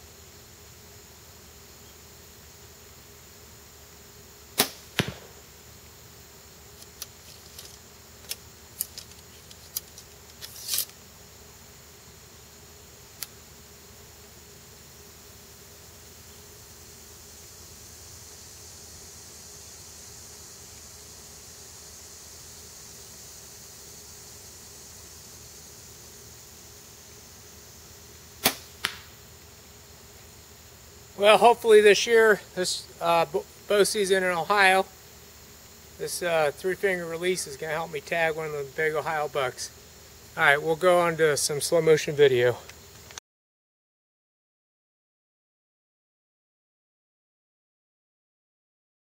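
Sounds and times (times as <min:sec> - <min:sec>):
arrow hitting target: 0:04.6 - 0:05.4, 0:28.4 - 0:29.1
bow string crack: 0:04.6 - 0:05.4, 0:06.8 - 0:11.0, 0:28.4 - 0:29.2
bow string snap: 0:04.6 - 0:05.4, 0:28.4 - 0:29.1
bow handling clicks and rattles: 0:06.8 - 0:11.0.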